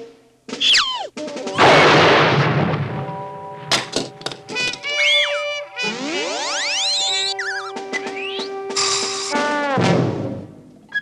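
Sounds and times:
cartoon orchestral underscore: 4.4 - 10.2.

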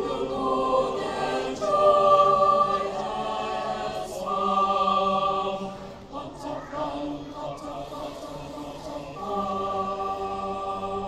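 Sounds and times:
mixed choir singing sustained chord: 0.0 - 11.0.

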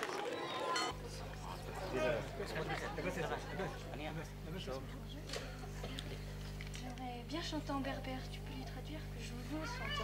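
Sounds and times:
quiet talk: 0.1 - 10.0.

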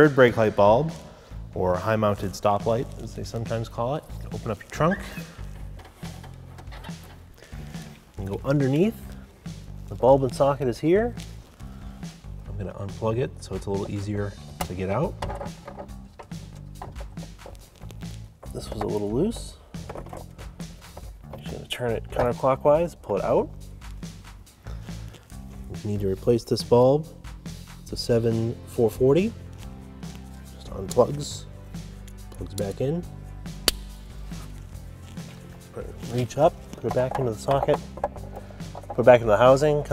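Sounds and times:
background music: 0.0 - 39.9
bulb clicking into socket: 33.6 - 33.9.

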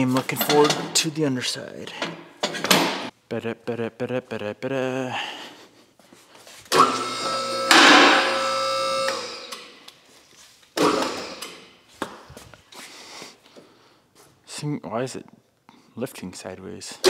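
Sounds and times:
hydraulic pump motor running: 6.7 - 9.7, 10.8 - 11.6.

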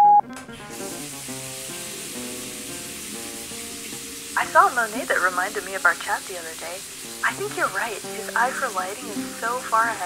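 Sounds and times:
electronic beep: 0.0 - 0.2
soft background music: 0.2 - 10.0
steady hiss: 0.6 - 10.0.

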